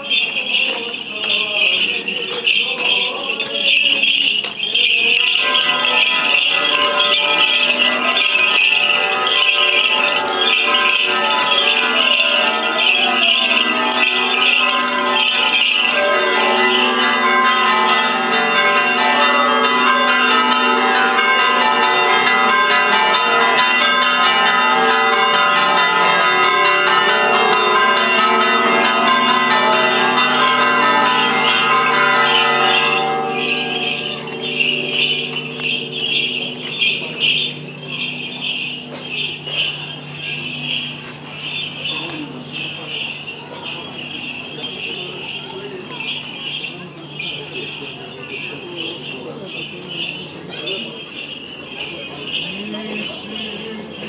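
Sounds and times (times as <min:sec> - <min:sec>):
small bells jingling: 0:00.0 - 0:54.0.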